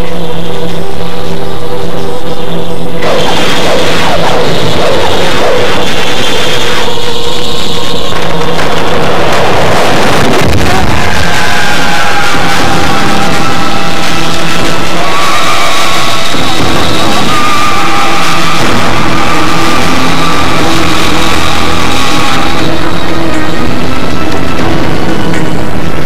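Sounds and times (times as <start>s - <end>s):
loud film score music: 0.0s - 26.0s
falling pitch sweep: 3.0s - 8.2s.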